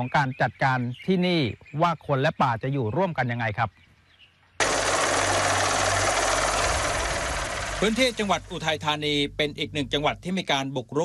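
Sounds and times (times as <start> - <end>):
helicopter rotor and engine: 4.6 - 8.8
low hum: 4.6 - 10.4.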